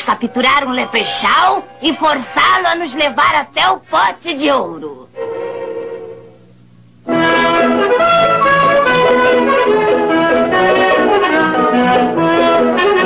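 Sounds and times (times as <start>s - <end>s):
brass cartoon music: 5.2s - 6.3s, 7.1s - 13.0s.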